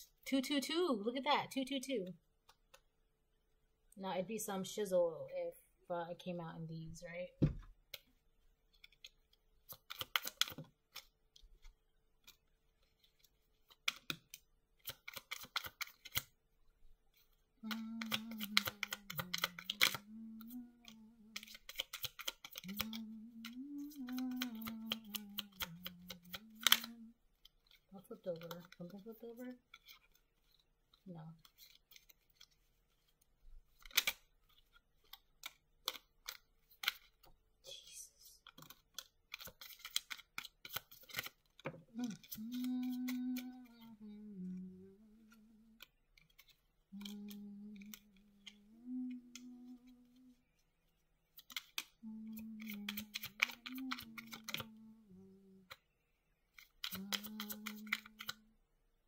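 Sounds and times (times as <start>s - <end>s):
cards being shuffled and dealt: 7.4s - 16.4s, 17.1s - 37.4s, 38.4s - 55.9s, 56.5s - 58.4s
woman humming: 17.6s - 21.6s, 22.6s - 27.2s, 41.9s - 45.8s, 46.9s - 50.4s, 52.0s - 55.8s, 56.9s - 58.5s.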